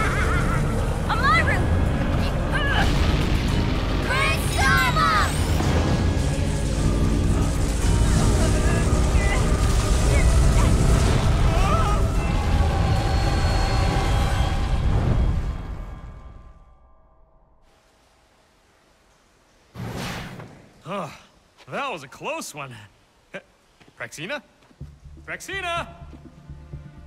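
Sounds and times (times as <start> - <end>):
dramatic music: 0.0 - 16.8.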